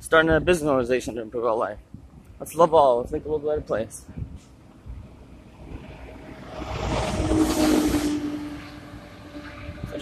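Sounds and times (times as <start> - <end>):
truck passing by: 5.4 - 10.0.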